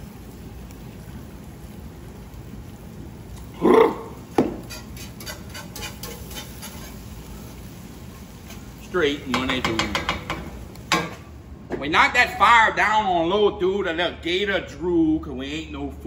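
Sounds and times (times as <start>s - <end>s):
man vocal exclamation: 3.5s - 4.2s
wire whisk ticking against pan: 9.3s - 10.4s.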